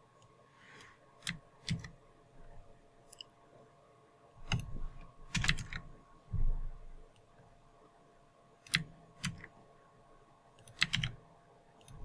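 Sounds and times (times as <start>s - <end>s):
keyboard key clicks: 1.2s - 2.0s, 4.4s - 5.9s, 8.7s - 9.5s, 10.6s - 11.2s
dull low knock: 6.3s - 6.9s.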